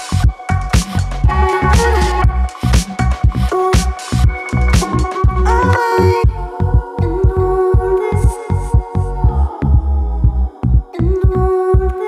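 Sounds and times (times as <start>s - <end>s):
loud metal music: 0.0s - 6.6s.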